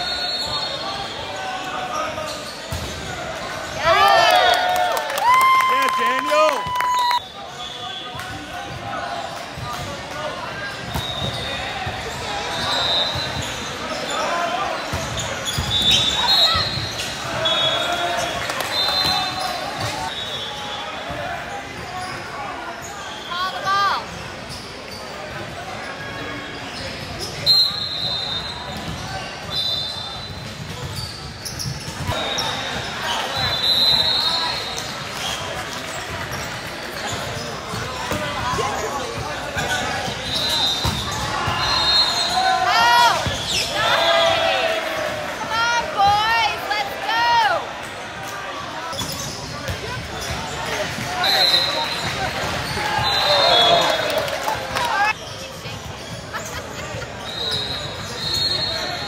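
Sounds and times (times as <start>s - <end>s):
sneakers squeaking on hardwood: 14.8s - 17.7s, 36.5s - 42.4s, 43.2s - 43.8s, 48.9s - 53.9s.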